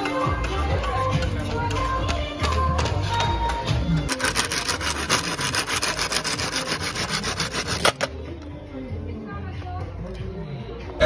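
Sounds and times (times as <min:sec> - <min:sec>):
hand tool rasping on bamboo: 0:04.1 - 0:08.1.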